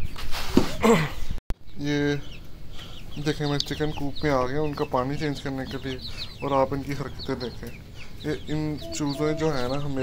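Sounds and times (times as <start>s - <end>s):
young chickens clucking: 1.6s - 10.0s.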